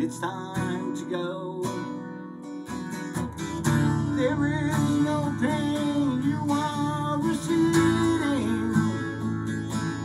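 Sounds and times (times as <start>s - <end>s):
acoustic guitar strummed: 0.0s - 10.0s.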